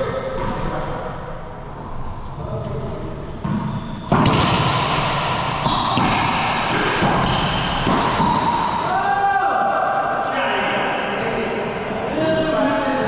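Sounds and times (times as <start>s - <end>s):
sneakers squeaking on wood floor: 2.6s - 8.8s
ball bouncing: 3.4s - 8.8s
racquets hitting ball: 3.4s - 8.9s.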